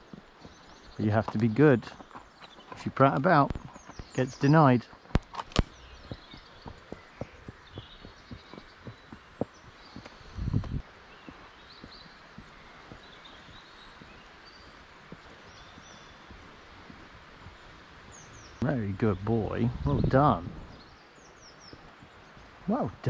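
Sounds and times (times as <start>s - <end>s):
birds chirping faintly: 0.0s - 23.0s
horse hooves walking on dirt: 0.0s - 23.0s.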